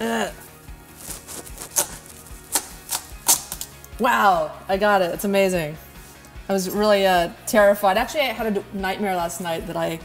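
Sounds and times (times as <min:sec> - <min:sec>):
knife cracking through squash: 0:01.0 - 0:03.8.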